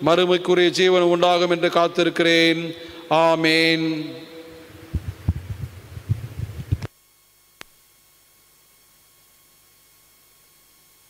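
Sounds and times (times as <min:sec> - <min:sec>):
microphone handling thuds: 0:04.7 - 0:06.9.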